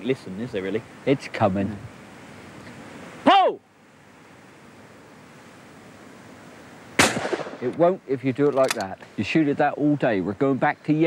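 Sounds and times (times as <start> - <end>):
person shouting: 3.2 - 3.6
shotgun shot: 7.0 - 7.7.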